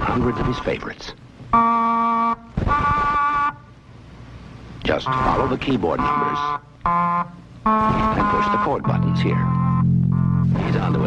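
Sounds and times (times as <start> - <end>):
reedy organ tones: 0.0 - 1.0, 1.6 - 3.7, 4.8 - 11.0.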